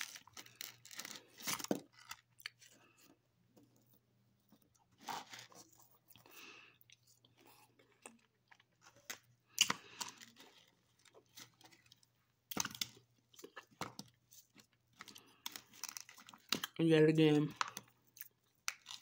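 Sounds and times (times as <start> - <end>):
person chewing crunchy grapes: 0.0 - 3.2, 4.6 - 16.8, 17.4 - 19.0.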